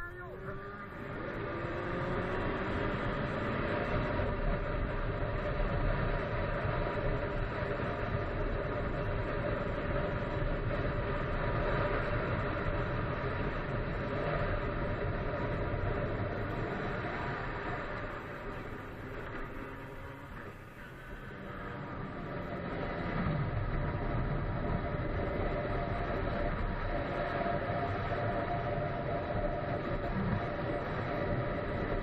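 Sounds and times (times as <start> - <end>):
motorcycle engine running: 0.0 - 32.0
road rumble: 0.0 - 32.0.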